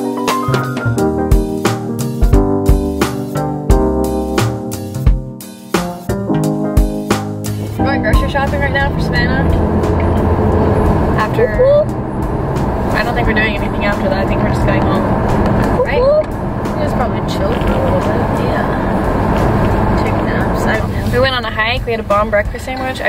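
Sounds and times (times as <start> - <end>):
car road and engine noise: 5.8 - 23.0
women talking: 7.8 - 9.6, 11.2 - 11.9, 12.9 - 15.1, 15.7 - 18.9, 20.0 - 23.0.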